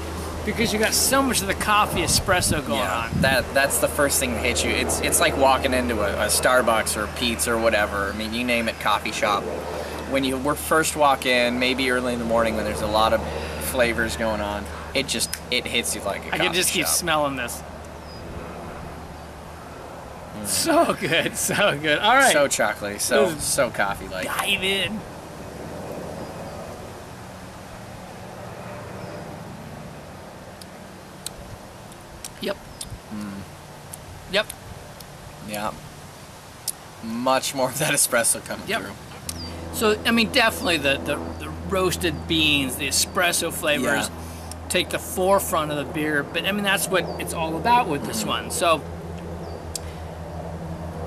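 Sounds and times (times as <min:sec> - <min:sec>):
low constant hum: 0:00.0 - 0:28.6, 0:29.2 - 0:51.0.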